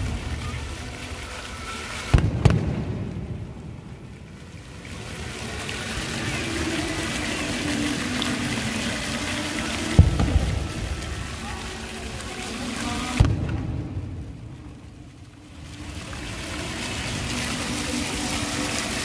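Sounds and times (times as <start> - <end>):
fountain water jets rushing: 0.0 - 19.0
splashing water: 0.0 - 19.0.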